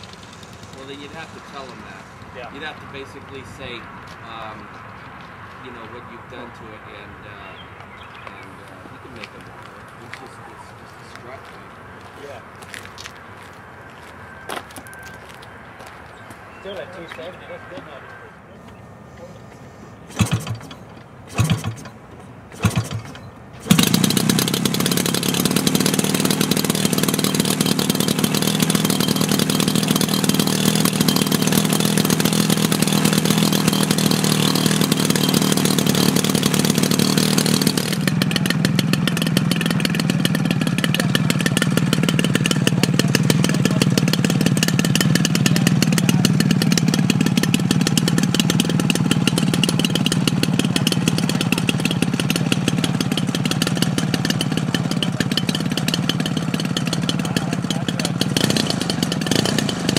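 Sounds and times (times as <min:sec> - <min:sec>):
model aircraft engine running: 0:00.0 - 0:03.8, 0:19.5 - 0:59.9.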